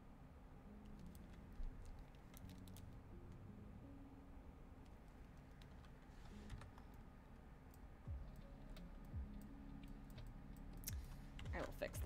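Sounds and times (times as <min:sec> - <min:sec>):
computer keyboard clicking: 0:00.9 - 0:02.9, 0:05.3 - 0:07.0
soft low thumps: 0:08.1 - 0:08.4.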